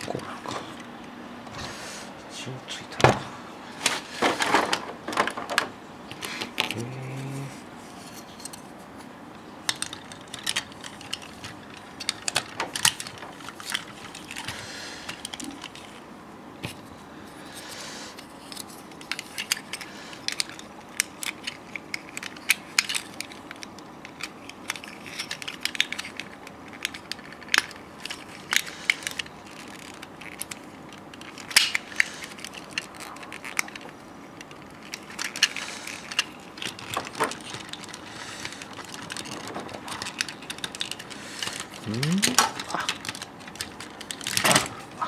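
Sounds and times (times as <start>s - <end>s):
plastic toy parts clicking: 9.6s - 16.0s, 18.4s - 44.7s.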